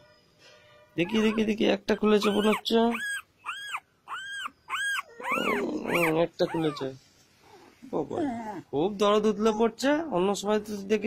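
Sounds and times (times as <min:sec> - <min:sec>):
puppy whimpering: 0:01.0 - 0:10.2.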